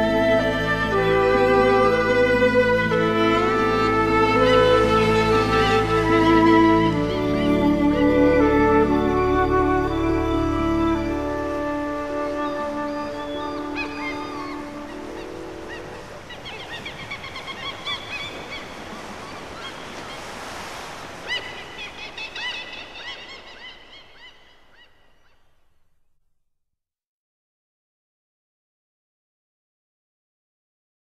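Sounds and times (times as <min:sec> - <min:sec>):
calm music with held chords: 0:00.0 - 0:16.3
surf-like noise: 0:00.0 - 0:25.0.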